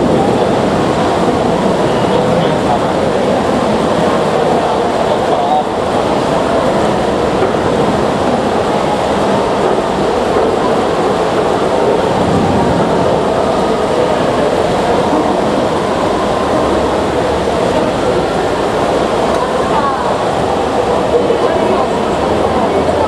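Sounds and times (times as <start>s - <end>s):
heavy rain downpour: 0.0s - 23.0s.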